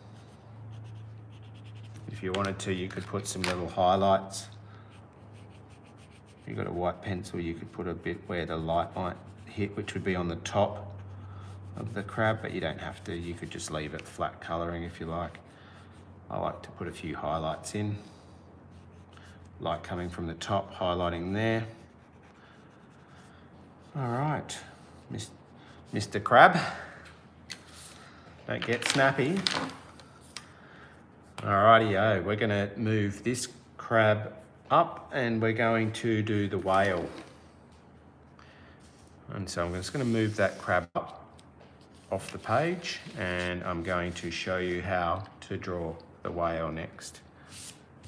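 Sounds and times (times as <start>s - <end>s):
pencil scratching on paper: 0.0s - 2.2s, 4.2s - 16.7s, 18.7s - 20.2s, 21.0s - 24.2s
steady low hum: 0.0s - 28.6s.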